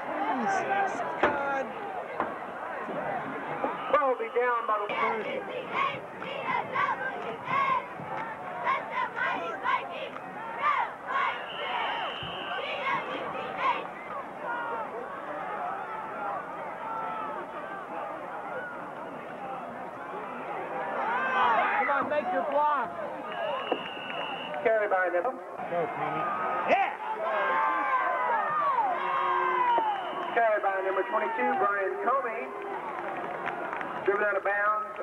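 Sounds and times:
crowd chatter and shouts: 0.0 - 35.0.

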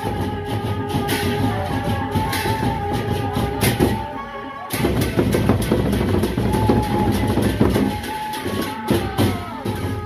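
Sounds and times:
barrel drums beaten fast: 0.0 - 4.1, 4.7 - 10.0.

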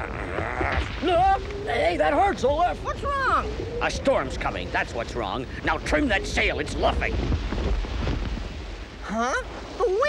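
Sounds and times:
wind rushing with low rumble: 0.0 - 10.0.

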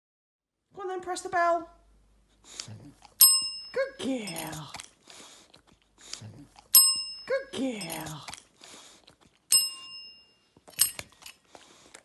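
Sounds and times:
desk call bell ding: 3.2 - 4.4, 6.8 - 7.9, 9.5 - 11.0.

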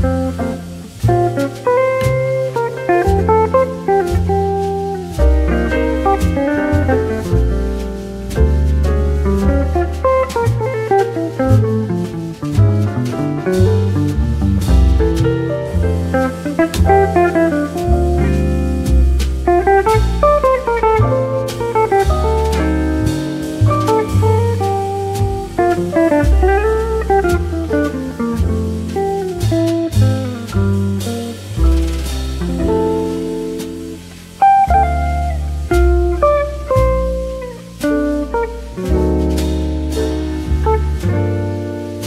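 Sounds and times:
jazz guitar melodic runs: 0.0 - 42.0
light drums: 0.0 - 42.0
low bass notes: 0.0 - 42.0.

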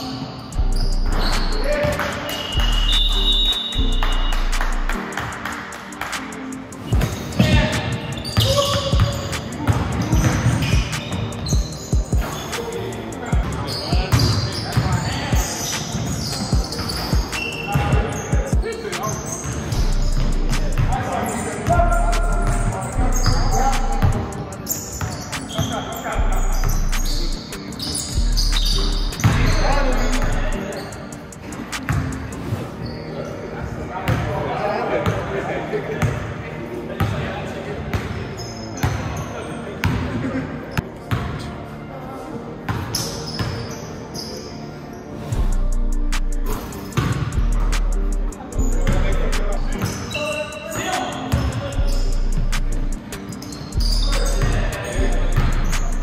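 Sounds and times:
sneakers squeaking on court: 0.0 - 34.3, 37.9 - 40.1, 40.7 - 41.7, 42.6 - 45.6, 46.4 - 56.0
players' voices echoing: 0.0 - 56.0.

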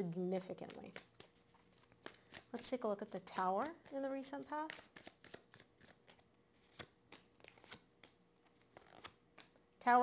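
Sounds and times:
cards being shuffled: 0.4 - 9.6.

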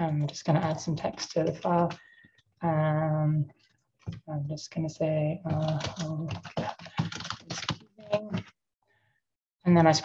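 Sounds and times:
typing on a keyboard: 5.5 - 8.5.

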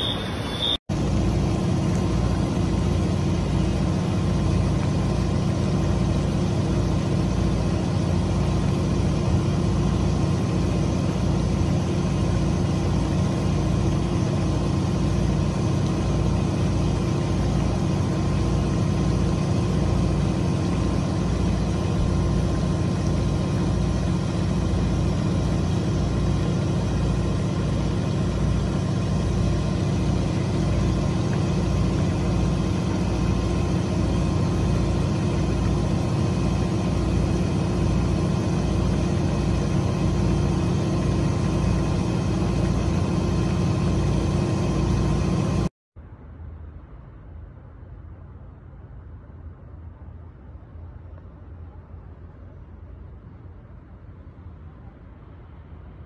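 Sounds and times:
boat engine idling: 0.0 - 45.0.

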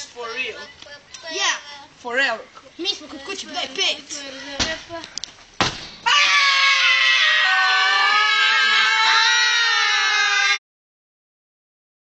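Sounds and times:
sharp bangs: 5.6 - 6.1
children screaming: 6.0 - 10.6.

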